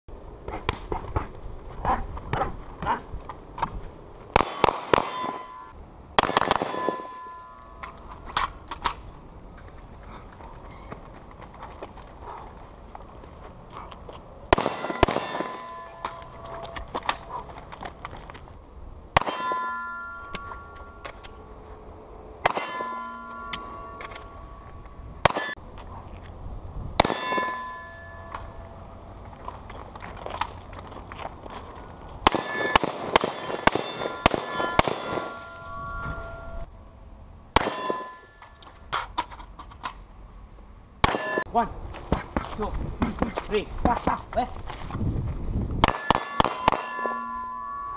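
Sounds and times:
gunshots: 0:04.4 - 0:05.5, 0:06.2 - 0:07.2, 0:14.5 - 0:16.2, 0:27.0 - 0:27.7, 0:32.2 - 0:35.5
rifle shot: 0:04.4 - 0:05.5, 0:06.2 - 0:07.2, 0:14.5 - 0:15.9, 0:27.0 - 0:27.5, 0:32.2 - 0:35.4
steel plate ringing: 0:04.5 - 0:08.3, 0:14.5 - 0:17.3, 0:19.2 - 0:25.6, 0:27.0 - 0:29.0, 0:32.3 - 0:36.7, 0:37.6 - 0:38.8, 0:41.0 - 0:41.7, 0:45.8 - 0:47.9.

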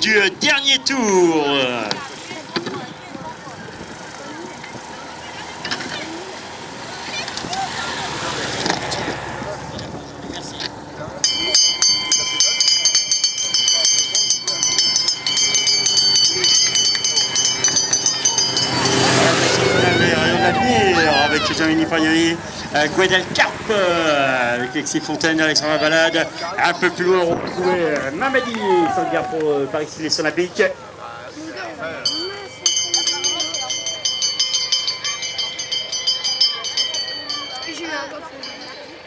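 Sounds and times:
man speaking over public address: 0:00.0 - 0:02.0, 0:19.2 - 0:32.1
hand bell ringing rapidly: 0:11.2 - 0:21.7, 0:32.0 - 0:39.0.

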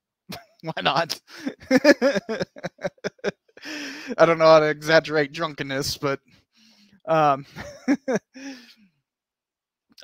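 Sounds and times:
man chuckling: 0:00.3 - 0:04.2, 0:07.5 - 0:08.7.

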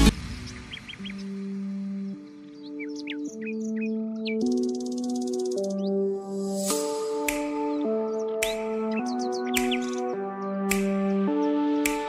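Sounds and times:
slow held music chords: 0:00.0 - 0:12.0
rapid bird trill: 0:00.4 - 0:01.4
bird chirps: 0:00.4 - 0:11.6.

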